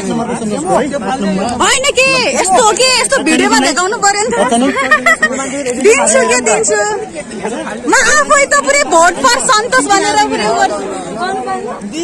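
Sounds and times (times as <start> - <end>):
people talking in a crowd: 0.0 - 12.0.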